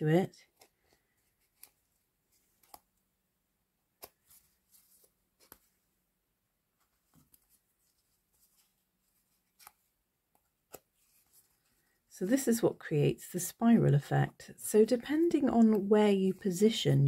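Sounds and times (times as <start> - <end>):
faint clicks and rustles of threads: 0.4 - 3.1, 4.0 - 5.9, 6.7 - 12.2.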